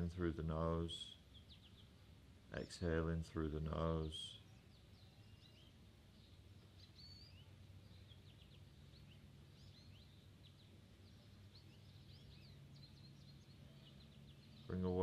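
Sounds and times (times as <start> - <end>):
low steady hum: 0.0 - 15.0
small birds chirping: 0.0 - 15.0.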